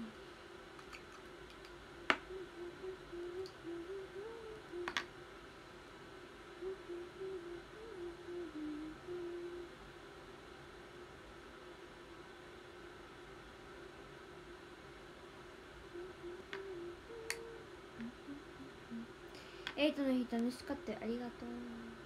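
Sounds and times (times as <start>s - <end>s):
woman humming softly: 0.0s - 0.2s, 2.1s - 5.0s, 6.6s - 9.8s, 15.9s - 19.7s, 20.3s - 22.0s.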